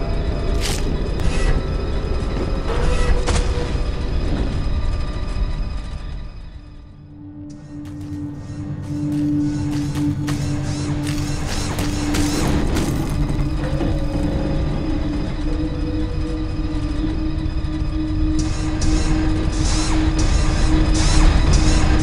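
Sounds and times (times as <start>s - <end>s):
music with held low tone: 0.0s - 22.0s
steady rumble: 0.0s - 22.0s.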